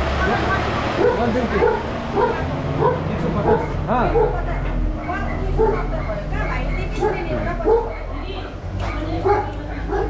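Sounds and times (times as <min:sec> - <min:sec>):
dog yelping: 0:01.0 - 0:04.4, 0:05.5 - 0:06.0, 0:06.8 - 0:08.1, 0:09.2 - 0:10.0.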